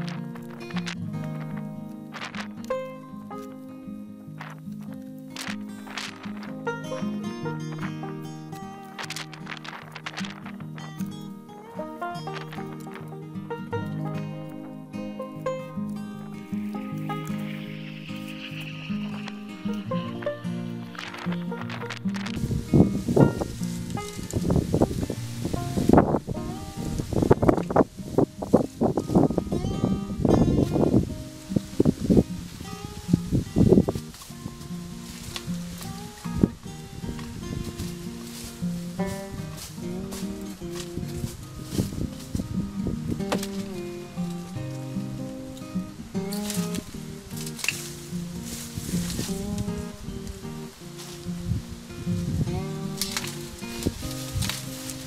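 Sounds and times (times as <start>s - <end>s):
wire clipper snipping canes: 0.0s - 3.7s, 4.4s - 13.2s, 16.7s - 22.6s, 43.2s - 51.3s, 52.6s - 55.0s
dry bamboo crackling and rustling: 0.0s - 55.0s
instrumental music held notes: 0.0s - 55.0s
sharp snap: 52.5s - 55.0s.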